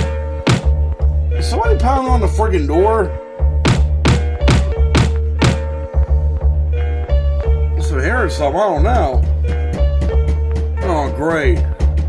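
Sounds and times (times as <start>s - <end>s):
heavy knocking on door: 0.0s - 0.8s, 3.6s - 5.7s
background music with deep bass: 0.0s - 12.0s.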